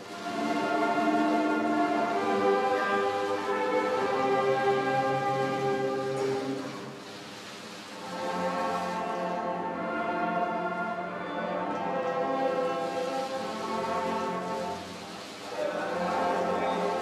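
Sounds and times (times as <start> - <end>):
slow orchestral music: 0.0 - 17.0.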